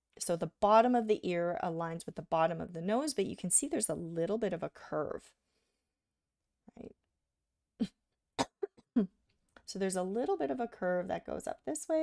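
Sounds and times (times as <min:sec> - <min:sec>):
woman coughing lightly: 0:08.4 - 0:08.8.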